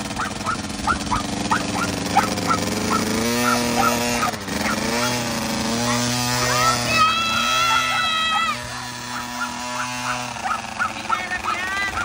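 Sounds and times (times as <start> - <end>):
two-stroke dirt bike idling: 0.0 - 12.0
small dog yapping: 0.1 - 5.2, 5.8 - 12.0.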